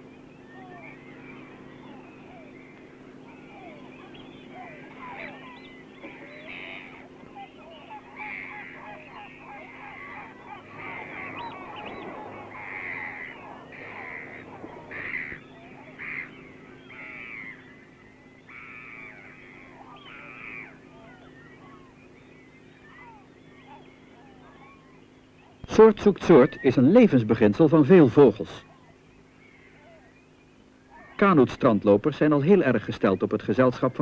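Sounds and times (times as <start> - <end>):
flock of birds calling: 0.0 - 34.0
low steady hum: 0.0 - 34.0.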